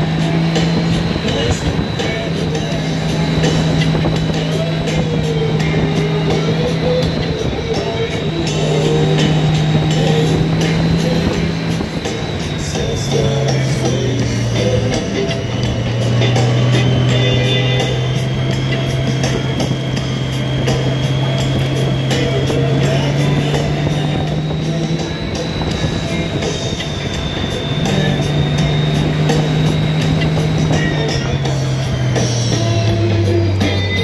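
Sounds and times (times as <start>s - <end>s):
wind rush: 0.0s - 33.6s
motorcycle engine running: 0.0s - 34.0s
rock music with guitar: 0.0s - 34.0s.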